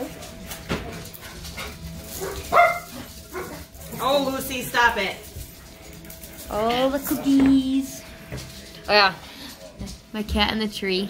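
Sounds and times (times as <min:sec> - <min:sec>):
dog barking: 0:01.6 - 0:03.7.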